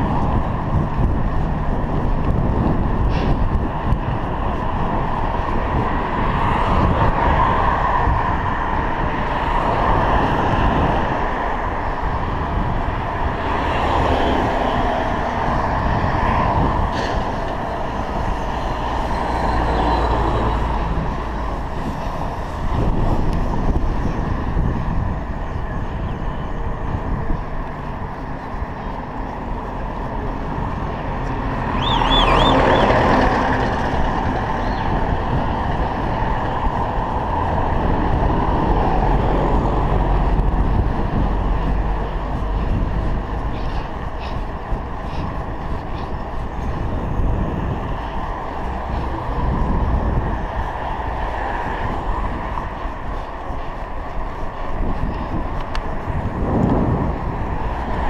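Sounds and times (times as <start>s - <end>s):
traffic passing: 0.0s - 58.0s
wind rumbling on microphone: 0.0s - 58.0s.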